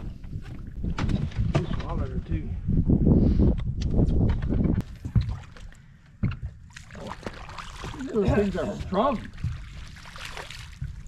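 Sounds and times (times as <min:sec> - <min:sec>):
wind rumble on microphone: 0:00.0 - 0:05.4, 0:07.9 - 0:11.0.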